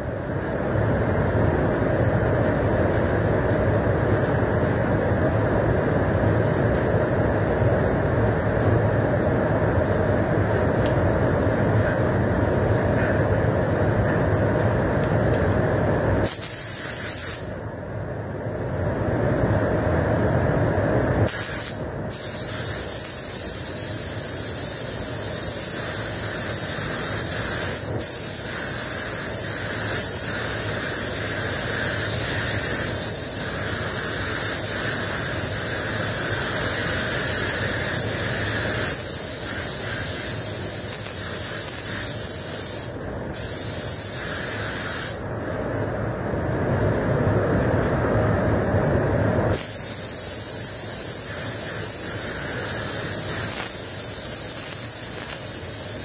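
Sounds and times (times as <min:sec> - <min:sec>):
spray gun hissing: 0:16.2 - 0:17.6, 0:21.3 - 0:45.3, 0:49.5 - 0:56.0.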